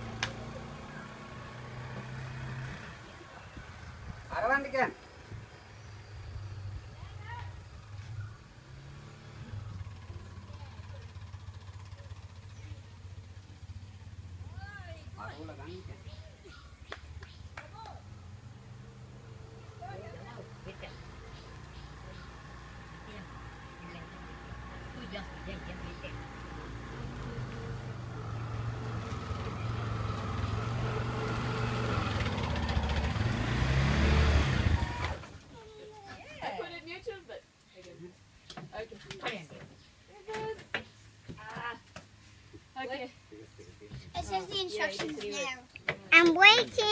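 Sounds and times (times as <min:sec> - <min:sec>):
auto rickshaw engine running: 0:00.0 - 0:35.7.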